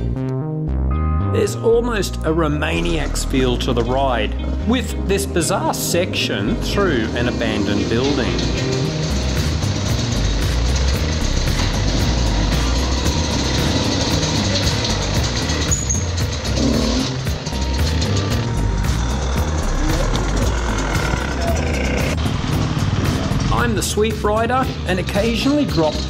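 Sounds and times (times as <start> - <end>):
background music with steady beat: 0.0 - 26.0
dirt bike engine running: 3.4 - 26.0.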